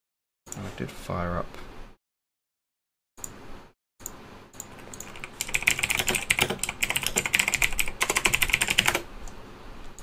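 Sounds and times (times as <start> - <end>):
fast typing on keyboard: 4.7 - 9.1.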